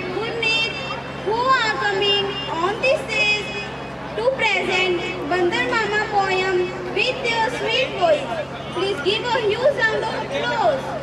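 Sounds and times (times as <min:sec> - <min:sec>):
girl speaking over public address: 0:00.0 - 0:11.0.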